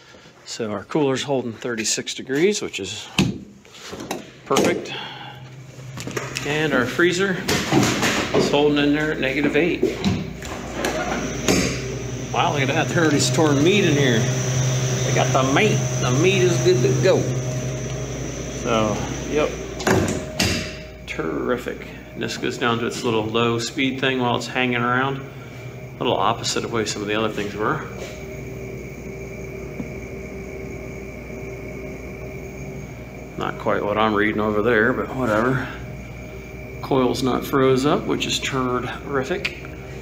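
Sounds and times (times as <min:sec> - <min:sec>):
evaporator fans whirring: 0:00.0 - 0:40.0
refrigeration equipment hum: 0:00.0 - 0:40.0.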